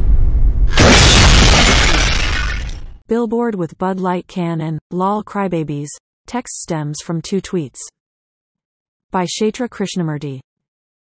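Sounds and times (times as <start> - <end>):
low bass rumble: 0.0 - 1.1
glass shattering: 0.7 - 3.0.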